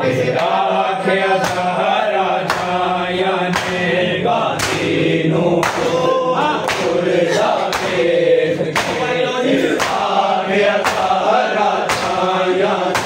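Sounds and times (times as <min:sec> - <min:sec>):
men chanting a lament: 0:00.0 - 0:13.0
hands slapping chests: 0:01.4 - 0:01.8, 0:02.4 - 0:02.8, 0:03.5 - 0:03.9, 0:04.6 - 0:05.0, 0:05.6 - 0:06.0, 0:06.6 - 0:08.0, 0:08.7 - 0:10.2, 0:10.8 - 0:13.0.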